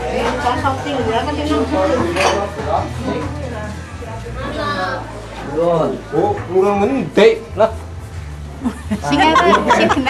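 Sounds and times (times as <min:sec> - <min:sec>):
dishes and cutlery clinking: 0:01.9 - 0:03.3
people talking: 0:09.0 - 0:10.0.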